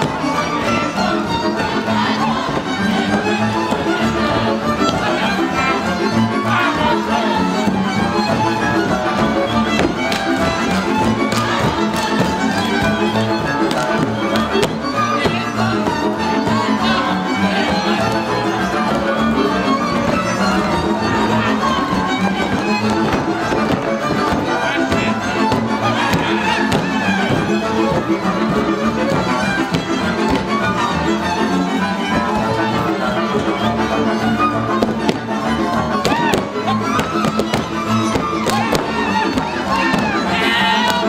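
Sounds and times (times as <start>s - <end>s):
fiddle melody: 0.0s - 41.0s
string accompaniment with bass: 0.0s - 41.0s.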